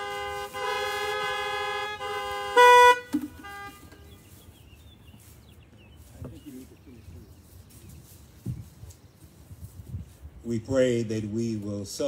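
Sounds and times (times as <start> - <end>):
car horns honking: 0.0 - 4.4.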